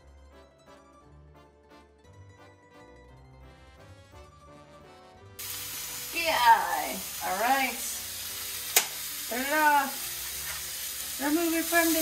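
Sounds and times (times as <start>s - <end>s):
background music: 0.0s - 12.0s
meat sizzling in frying pan: 5.4s - 12.0s.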